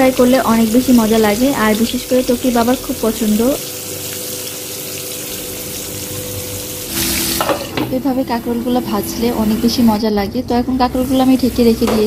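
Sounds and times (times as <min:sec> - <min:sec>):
vegetables sizzling in oil: 0:00.0 - 0:10.0, 0:10.8 - 0:12.0.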